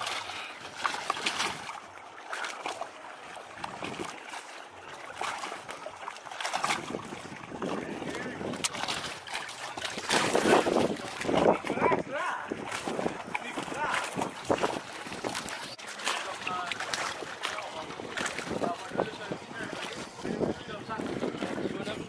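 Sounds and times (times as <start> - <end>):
wind and water rushing: 0.0 - 22.0.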